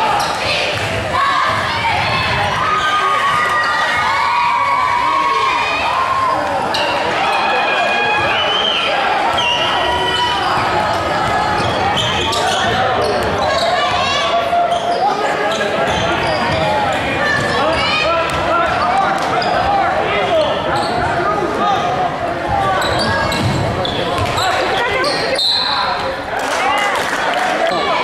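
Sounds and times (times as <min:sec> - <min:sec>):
crowd talking and shouting: 0:00.0 - 0:28.0
sneaker squeaks: 0:00.1 - 0:00.6, 0:08.2 - 0:21.2, 0:22.6 - 0:26.0.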